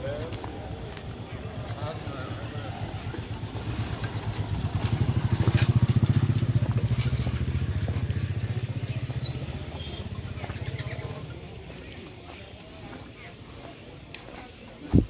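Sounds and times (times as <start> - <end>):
small motorcycle engine running: 1.8 - 12.0.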